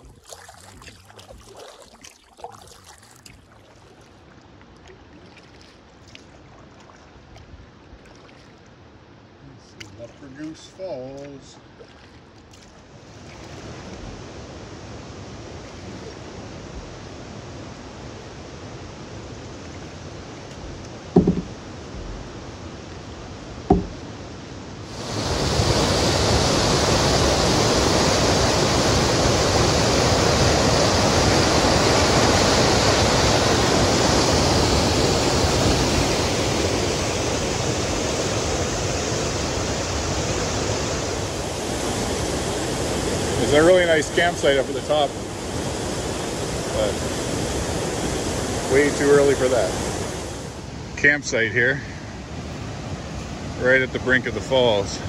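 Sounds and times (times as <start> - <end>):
sharp knocks: 21.1 - 22.1, 23.7 - 24.0
waterfall rushing over rock: 24.9 - 50.6.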